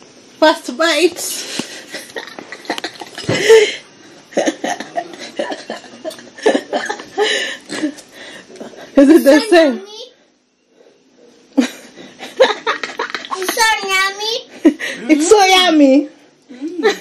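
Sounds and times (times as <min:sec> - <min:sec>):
person chuckling: 0:04.4 - 0:08.0.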